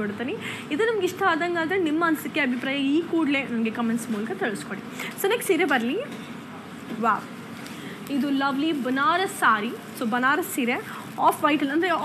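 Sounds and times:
woman speaking: 0.0 - 6.1, 6.9 - 7.4, 8.0 - 12.0.

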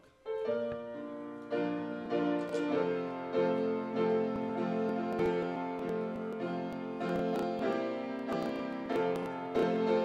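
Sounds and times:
piano playing hymn chords: 0.0 - 10.0.

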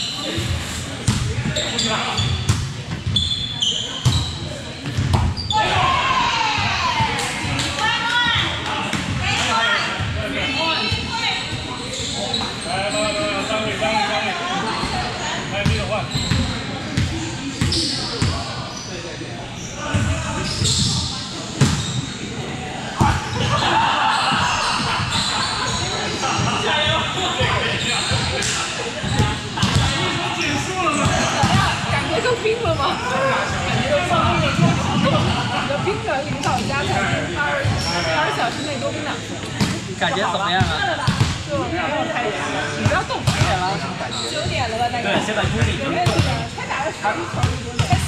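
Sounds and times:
players chatting: 0.0 - 48.0.

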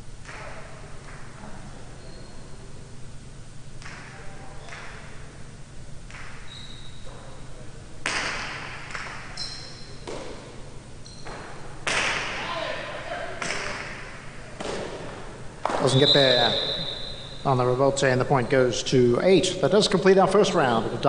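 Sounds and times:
shoe squeaks: 1.9 - 2.6, 6.4 - 7.3, 9.4 - 10.0, 11.0 - 11.4, 15.8 - 17.5
ball cracking against walls: 8.0 - 9.4, 10.0 - 10.6, 11.2 - 12.5, 13.4 - 15.9.

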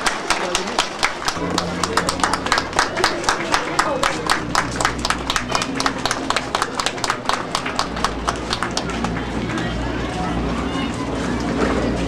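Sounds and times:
audience clapping in time: 0.0 - 10.1
background chatter: 0.0 - 12.0
electrical hum: 1.1 - 9.3.

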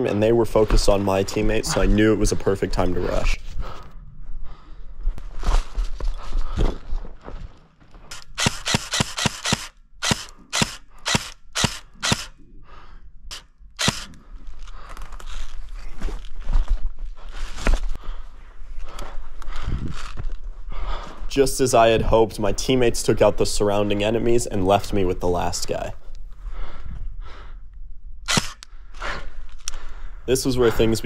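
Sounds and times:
airsoft rifle shots: 8.1 - 12.3, 13.8 - 14.1, 28.3 - 28.6.

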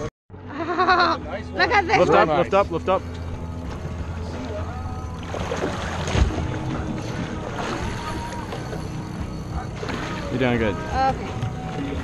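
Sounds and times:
boat engine idling: 0.7 - 12.0
faint voices or music: 1.1 - 12.0.

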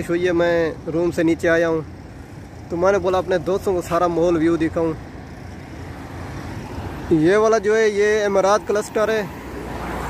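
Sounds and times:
passing car rushing: 4.8 - 10.0.

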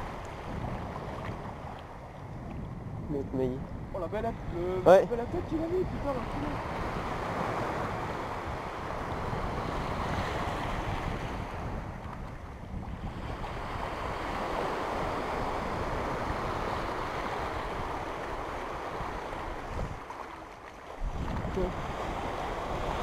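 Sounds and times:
small waves washing over sand: 0.0 - 23.0
wind buffeting microphone: 0.0 - 23.0.

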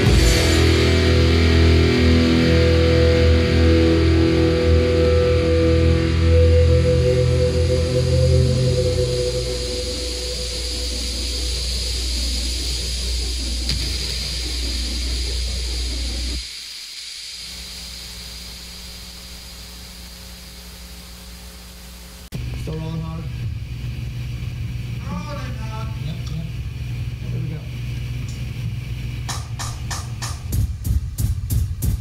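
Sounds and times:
alternative rock song: 0.0 - 11.1
wavering sweeping tones: 0.0 - 16.6
steady low hum: 0.0 - 32.0.

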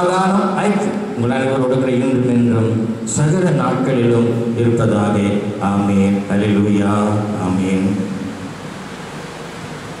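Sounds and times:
man's voice: 0.0 - 8.2
room noise hiss: 0.0 - 10.0.

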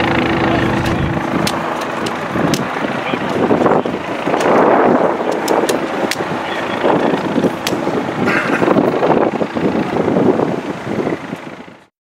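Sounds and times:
wind noise on microphone: 0.0 - 11.9.

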